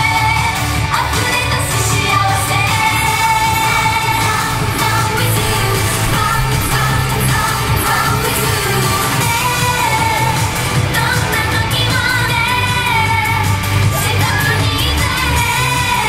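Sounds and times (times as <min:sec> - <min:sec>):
female group vocals: 0:00.0 - 0:16.0
pop dance song over loudspeakers: 0:00.0 - 0:16.0
heavy bass beat: 0:02.7 - 0:11.0.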